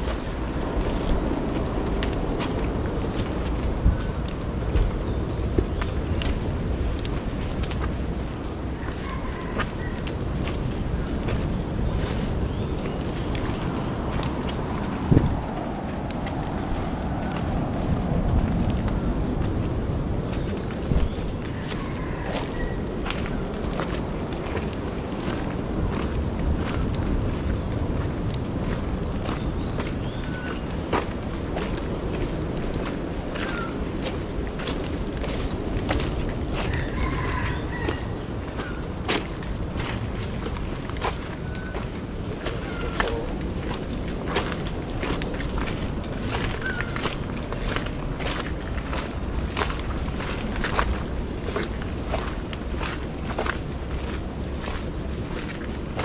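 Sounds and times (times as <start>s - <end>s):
footsteps on dirt trail: 0.0s - 56.0s
low rumble of microphone noise: 0.0s - 56.0s.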